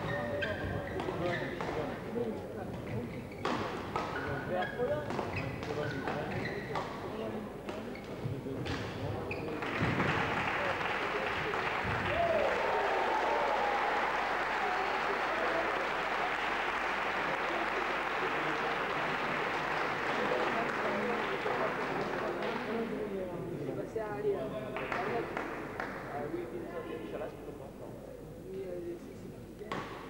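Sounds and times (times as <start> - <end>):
spectators applauding: 9.5 - 22.5.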